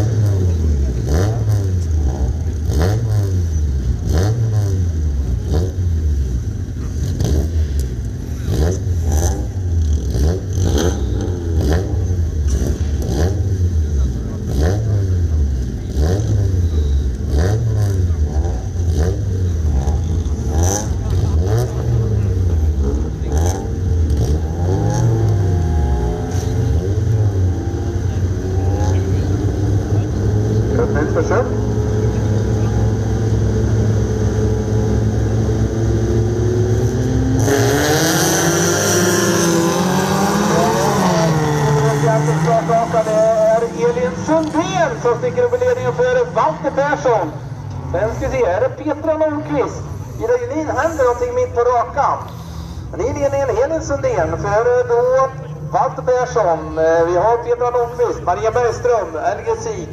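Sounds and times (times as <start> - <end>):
race car engines revving: 0.0 - 59.9.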